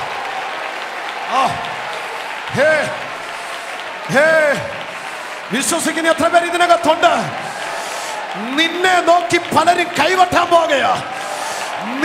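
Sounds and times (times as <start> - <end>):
congregation clapping: 0.0 - 12.0
preacher shouting: 0.0 - 12.0.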